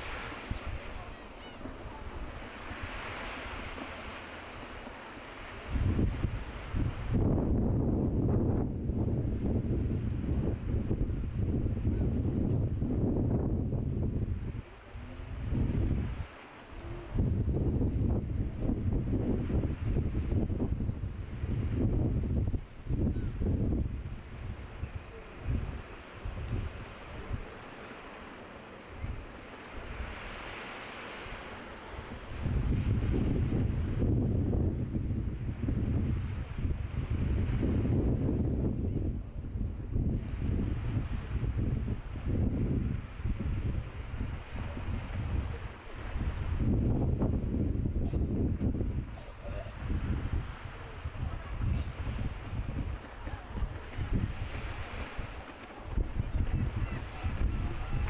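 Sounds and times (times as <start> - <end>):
choppy sea and surf: 0.0 - 58.0
wind buffeting the microphone: 0.0 - 58.0.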